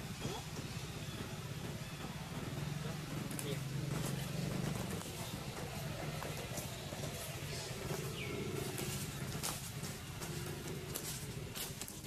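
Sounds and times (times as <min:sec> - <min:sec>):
steady low hum: 0:00.0 - 0:12.0
twigs crackling: 0:02.9 - 0:12.0.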